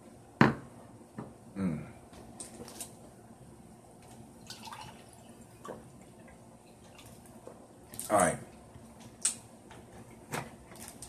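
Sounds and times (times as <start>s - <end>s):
man humming: 1.5s - 2.0s.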